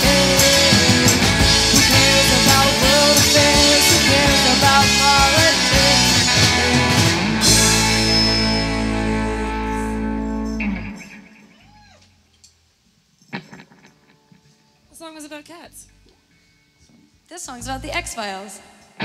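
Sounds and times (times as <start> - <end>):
guitar chord ringing out: 0.0 - 11.5
live rock band playing: 0.0 - 11.5.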